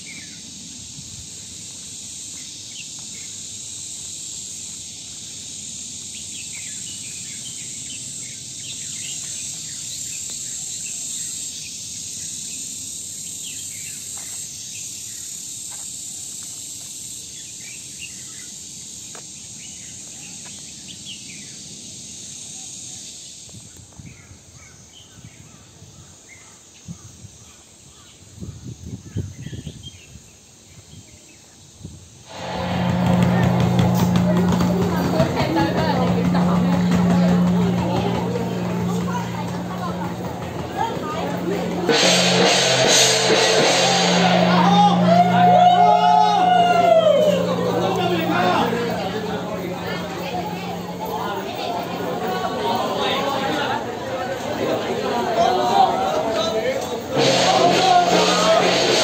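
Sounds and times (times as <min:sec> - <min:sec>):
low thumps: 0:32.3 - 0:52.5
high insect drone: 0:32.3 - 0:54.3
loud parade sound: 0:32.3 - 0:59.0.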